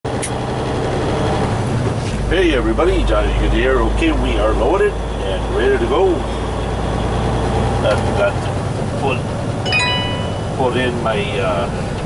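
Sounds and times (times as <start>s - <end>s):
diesel truck engine running: 0.1s - 12.0s
road noise: 0.1s - 12.0s.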